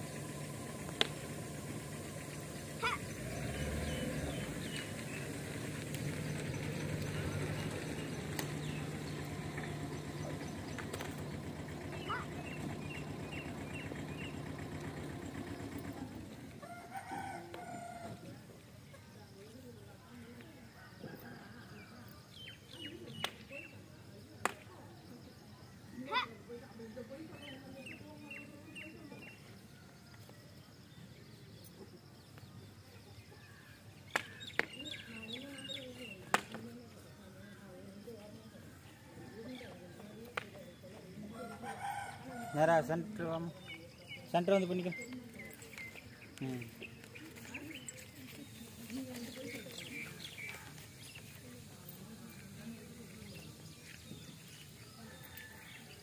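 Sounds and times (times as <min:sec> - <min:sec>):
rooster crowing: 0:16.6 - 0:18.3, 0:41.3 - 0:43.0, 0:54.9 - 0:56.0.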